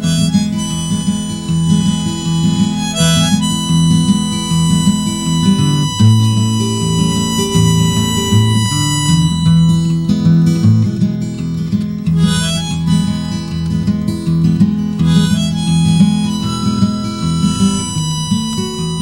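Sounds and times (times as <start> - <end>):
harmonica melody: 0.0 - 19.0
strummed acoustic guitar: 0.0 - 19.0.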